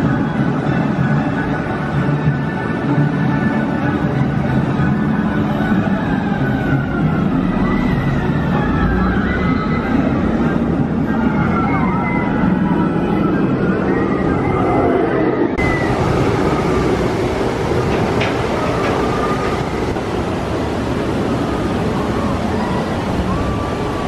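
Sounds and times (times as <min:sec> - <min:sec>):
murmur of distant crowd: 0:00.0 - 0:24.0.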